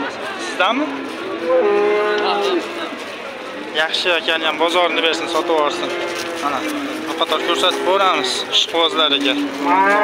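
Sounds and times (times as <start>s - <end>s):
cow mooing: 1.4s - 2.9s, 4.8s - 10.0s.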